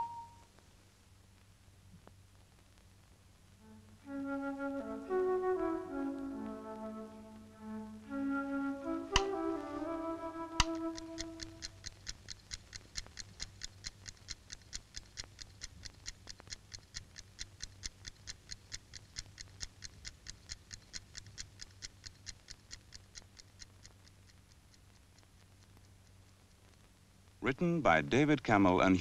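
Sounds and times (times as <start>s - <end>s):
alarm clock ticking: 0.0s - 0.4s, 10.6s - 24.8s.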